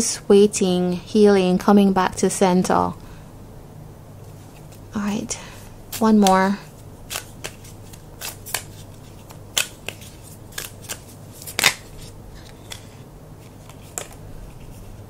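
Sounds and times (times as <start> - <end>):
cards being shuffled by hand: 4.3 - 5.0, 5.9 - 15.0.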